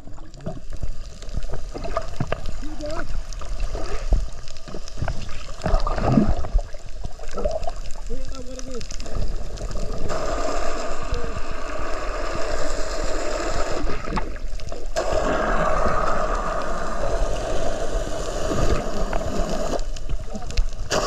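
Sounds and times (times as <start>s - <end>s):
diver's bubbles gurgling underwater: 0.0s - 21.0s.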